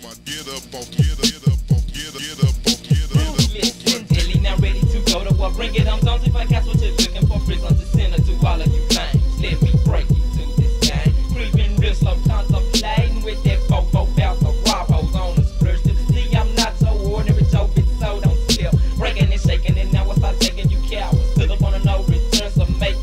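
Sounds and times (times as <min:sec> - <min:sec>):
rapping over a beat: 0:00.0 - 0:23.0
sustained deep bass: 0:00.9 - 0:23.0
kick drums dropping in pitch: 0:01.0 - 0:23.0.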